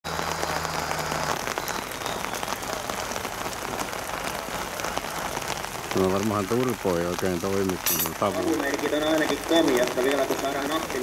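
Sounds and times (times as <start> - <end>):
rain on umbrella: 0.0 - 11.0.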